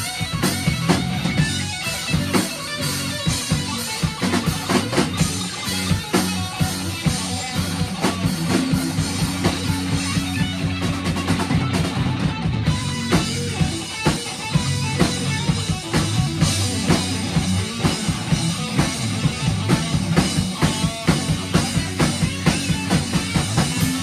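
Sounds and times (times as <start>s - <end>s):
drum kit steady beat: 0.0s - 24.0s
electric guitar: 0.0s - 24.0s.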